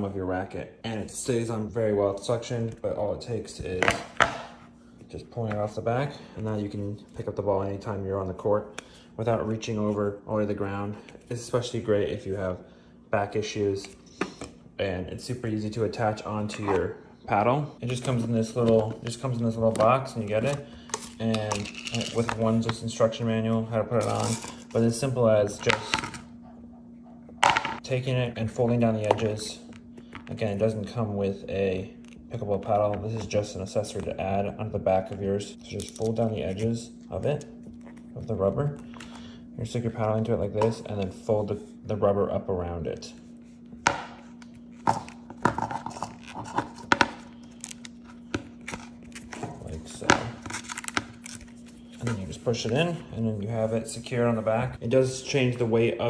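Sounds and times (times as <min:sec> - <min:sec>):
man speaking: 0:00.0 - 0:04.0, 0:05.1 - 0:14.0, 0:14.8 - 0:26.0, 0:30.3 - 0:38.9, 0:52.0 - 0:56.0
faint steady hum: 0:00.0 - 0:56.0.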